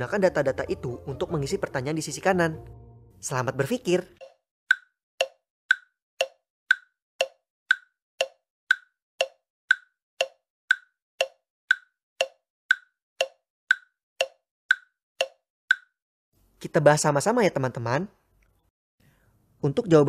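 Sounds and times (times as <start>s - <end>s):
clock ticking: 4.2s - 16.0s.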